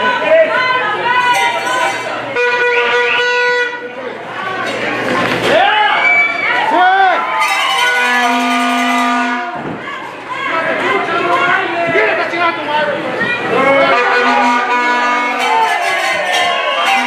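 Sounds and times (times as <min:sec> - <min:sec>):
crowd shouting and chatter: 0:00.0 - 0:17.0
horn blowing long notes: 0:02.3 - 0:04.0, 0:07.8 - 0:09.6, 0:13.7 - 0:17.0.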